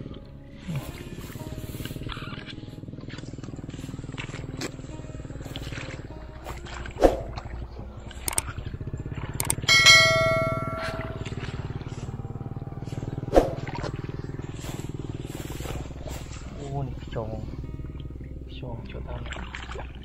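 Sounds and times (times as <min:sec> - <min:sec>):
low motor drone: 0:00.0 - 0:20.0
click: 0:08.2 - 0:08.5, 0:09.4 - 0:09.7
bell-like chime: 0:09.4 - 0:11.5.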